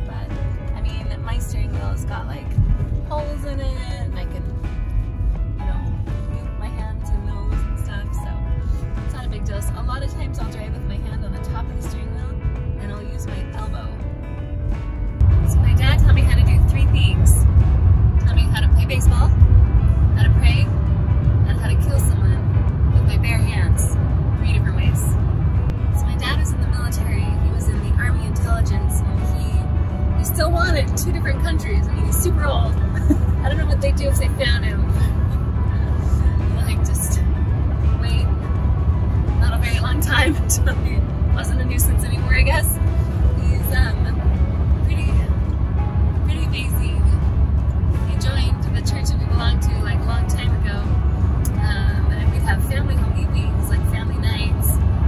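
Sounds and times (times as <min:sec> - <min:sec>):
music: 0:00.0 - 0:55.0
wind and road rumble: 0:00.0 - 0:55.0
voices: 0:38.0 - 0:38.3, 0:39.4 - 0:42.8, 0:51.6 - 0:54.8.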